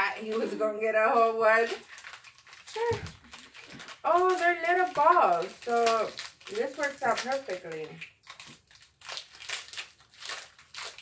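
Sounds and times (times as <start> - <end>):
candy wrapper crinkling: 0.0 - 11.0.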